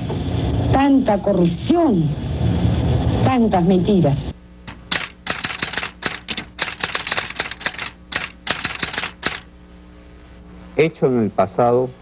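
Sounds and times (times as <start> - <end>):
faint steady hum: 0.0 - 12.0
rapid mechanical clicks: 4.9 - 9.5.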